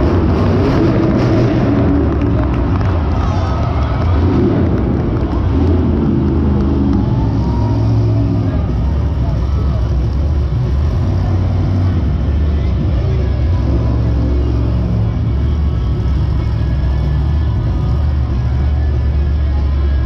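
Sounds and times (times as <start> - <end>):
monster truck engine running: 0.0 - 20.0.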